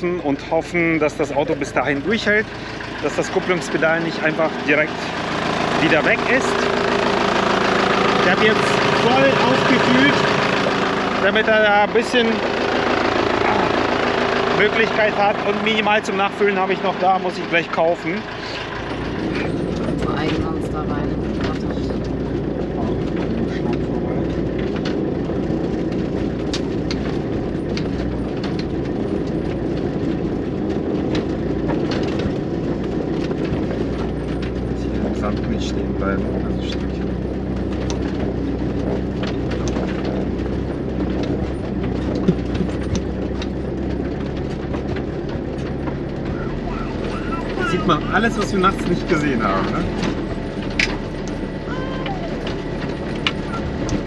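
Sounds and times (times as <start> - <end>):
truck engine running: 0.0 - 54.0
body knocks and rattles: 18.7 - 54.0.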